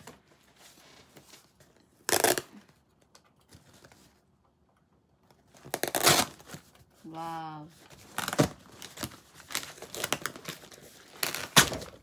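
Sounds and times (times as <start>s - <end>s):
faint rustling and scraping: 0.0s - 2.0s
packing tape tearing: 2.0s - 2.8s, 5.6s - 6.6s, 7.9s - 12.0s.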